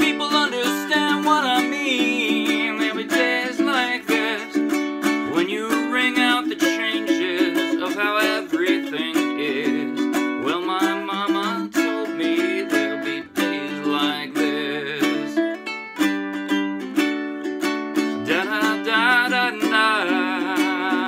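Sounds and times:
man singing: 0.0s - 15.6s, 18.0s - 21.0s
ukulele strumming: 0.0s - 21.0s.

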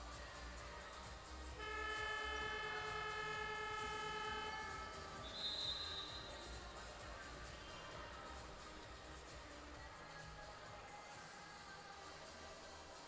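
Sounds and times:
scoreboard horn blare: 1.6s - 6.5s.

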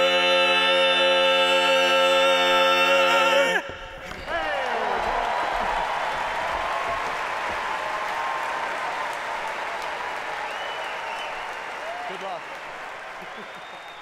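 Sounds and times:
audience applauding: 4.1s - 14.0s
audience cheering and whooping: 4.2s - 14.0s.

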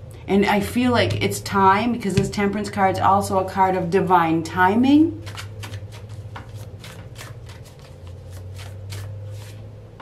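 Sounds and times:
steady low hum: 0.0s - 10.0s
cards being shuffled: 5.2s - 9.7s.

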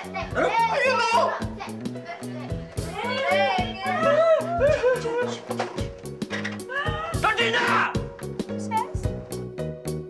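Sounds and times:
women shrieking excitedly: 3.1s - 5.1s, 6.7s - 7.3s.

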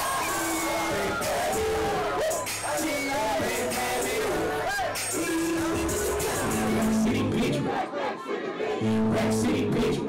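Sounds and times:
bass-heavy hip-hop beat: 0.0s - 7.7s, 8.8s - 10.0s
crowd shouting along: 0.0s - 8.8s.

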